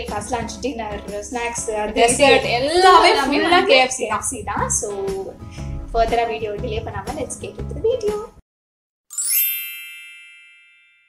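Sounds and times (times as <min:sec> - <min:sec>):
chime shimmer and ding: 0:09.1 - 0:11.0.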